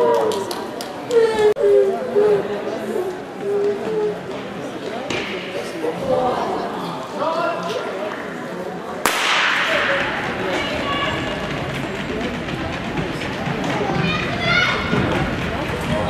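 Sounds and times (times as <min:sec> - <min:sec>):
starting pistol shot: 0:09.1 - 0:09.8.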